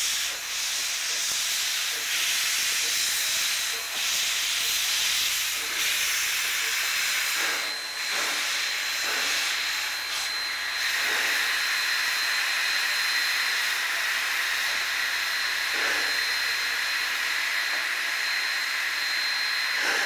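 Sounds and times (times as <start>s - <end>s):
steam locomotive hissing: 0.0s - 20.0s.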